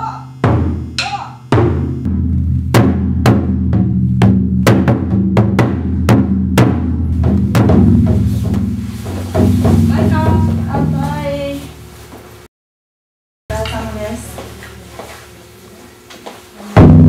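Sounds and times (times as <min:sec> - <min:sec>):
taiko drum strikes: 0:00.4 - 0:11.5, 0:16.8 - 0:17.0.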